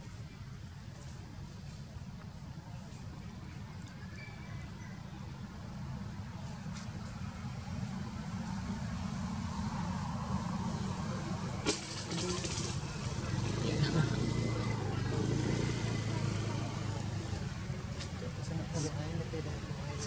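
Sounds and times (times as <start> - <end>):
faint voices: 0.0 - 20.0
vehicle engine running: 5.7 - 20.0.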